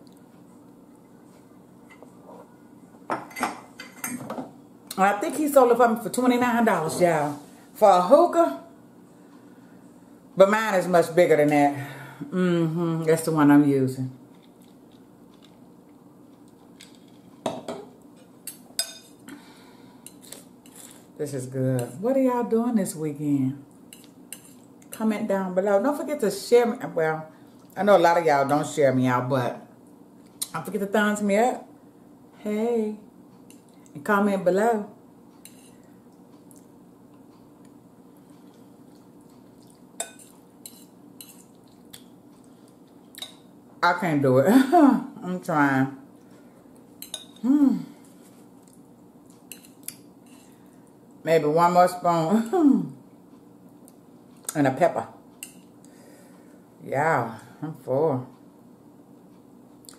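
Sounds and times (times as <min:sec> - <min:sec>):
steady low hum: 0:00.0 - 0:59.9
metal fork clinking against bowl: 0:47.0 - 0:47.4.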